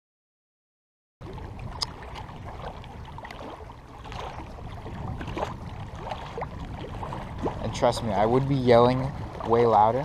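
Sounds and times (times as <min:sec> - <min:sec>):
small waves lapping on rocks: 0:01.2 - 0:10.0
wind rumble on microphone: 0:01.2 - 0:10.0.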